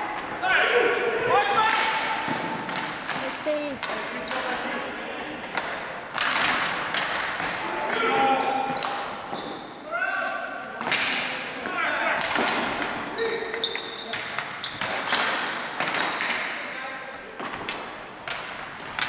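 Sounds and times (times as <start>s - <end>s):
players shouting: 0.0s - 2.2s
sneakers squeaking on floor: 1.9s - 4.7s, 7.4s - 9.9s, 11.3s - 19.0s
sticks and ball clacking: 2.7s - 4.6s, 5.4s - 8.0s.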